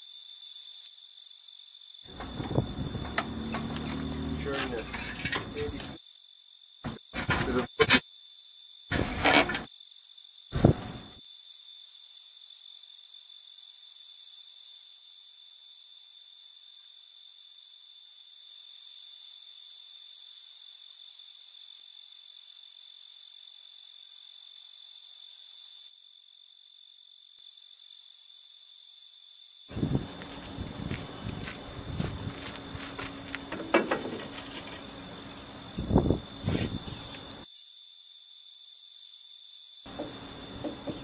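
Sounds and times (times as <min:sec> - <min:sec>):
insects buzzing: 0:02.1 - 0:06.0, 0:06.9 - 0:08.0, 0:08.9 - 0:09.7, 0:10.6 - 0:11.2, 0:29.7 - 0:37.4, 0:39.8 - 0:41.0
short knock: 0:39.9 - 0:41.0.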